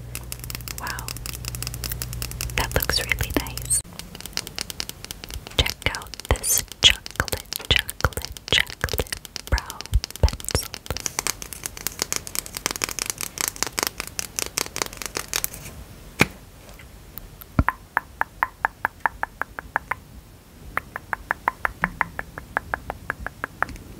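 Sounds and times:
fingernails tapping on plastic: 0.0 - 15.2.

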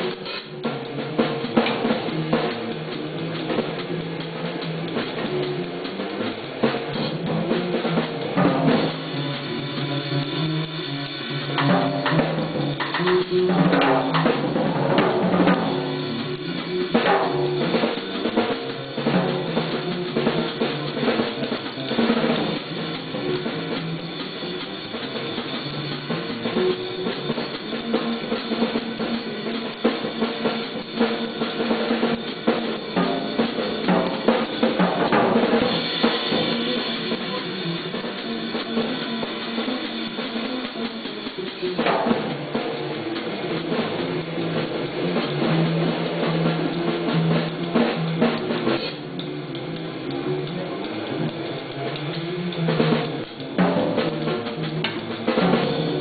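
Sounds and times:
jazz drum kit playing: 0.0 - 56.0.

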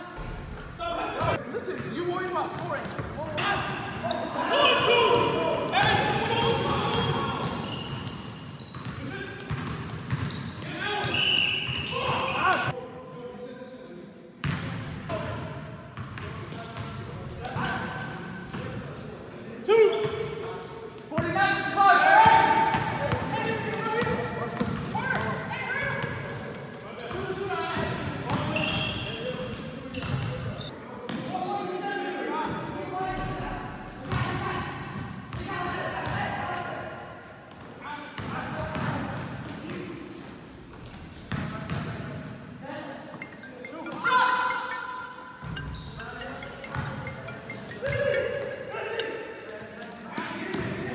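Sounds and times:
players' indistinct voices: 0.0 - 50.9.

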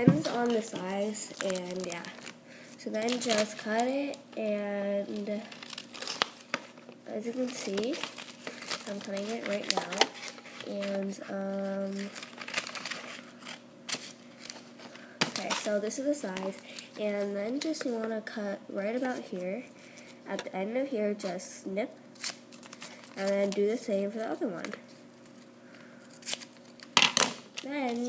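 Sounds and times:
scissors snipping wrapping paper: 0.4 - 2.3, 2.9 - 4.1, 7.3 - 14.6.

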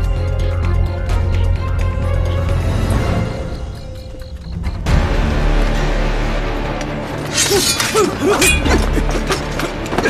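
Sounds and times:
tense film score: 0.0 - 10.0.

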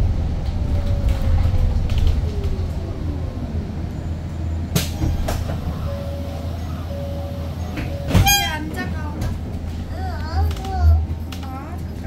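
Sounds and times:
low hum inside bus: 0.0 - 12.0.

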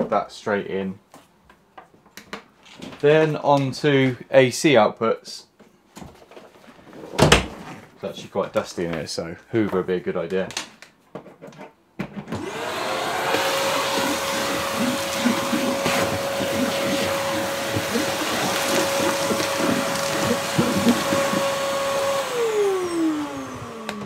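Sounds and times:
vacuum cleaner motor whine: 12.3 - 24.0.

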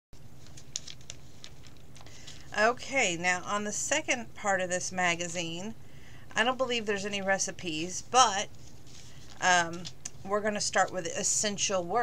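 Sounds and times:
low steady hum: 0.2 - 12.0.

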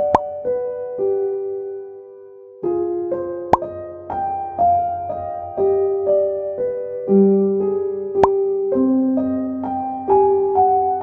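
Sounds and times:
soft electric piano music: 0.0 - 11.0.

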